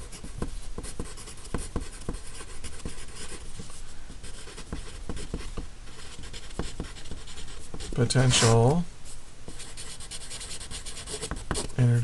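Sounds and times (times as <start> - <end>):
pencil scratching on paper: 0.1 - 8.8, 9.5 - 11.8.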